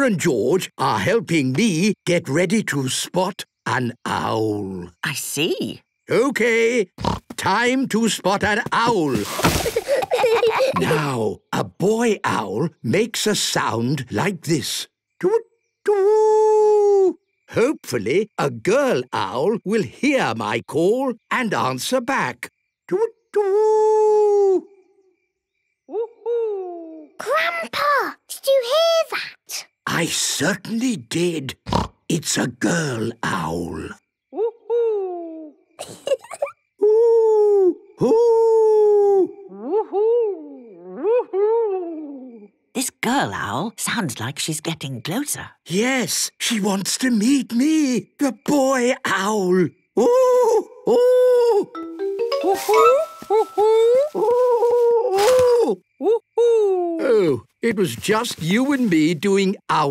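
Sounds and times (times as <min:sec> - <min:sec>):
people imitating owl hoots: 0:10.5 - 0:11.2, 0:50.0 - 0:57.4
man imitating owl hoot: 0:36.8 - 0:42.4, 0:50.0 - 0:51.8.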